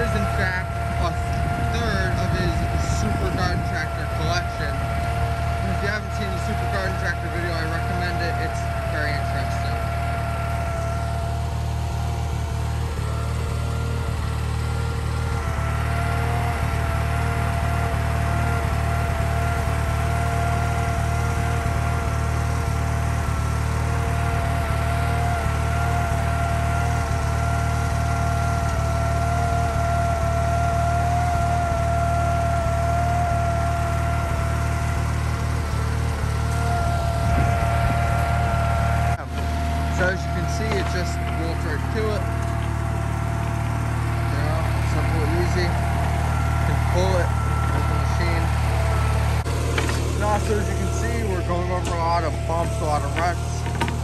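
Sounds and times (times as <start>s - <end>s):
garden tractor engine idling: 0.0s - 54.0s.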